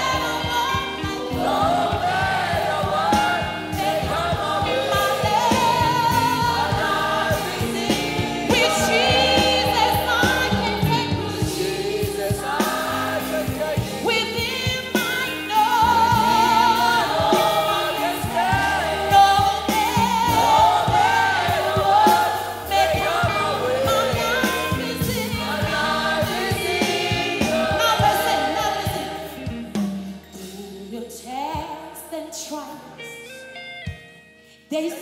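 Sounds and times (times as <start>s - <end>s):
group singing gospel song: 0.0s - 31.2s
band keyboards and bass: 0.0s - 31.8s
lead singer: 0.0s - 33.3s.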